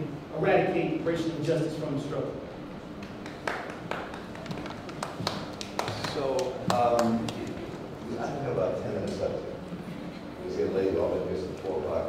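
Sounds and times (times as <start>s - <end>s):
low room noise: 0.0s - 12.0s
sharp irregular taps and clicks: 3.0s - 7.5s.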